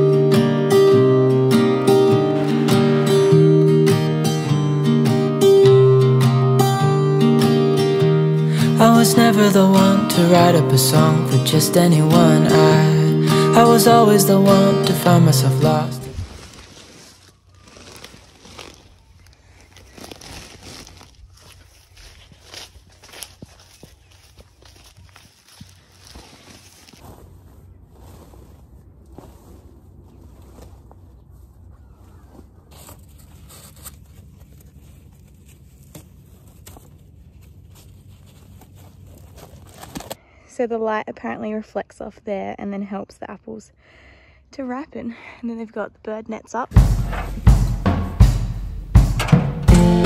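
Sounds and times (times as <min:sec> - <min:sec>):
rustling: 0:14.8 - 0:40.2.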